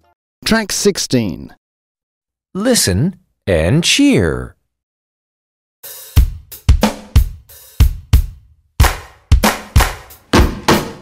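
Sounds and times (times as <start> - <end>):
drum beat with kick and snare: 5.8 - 11.0.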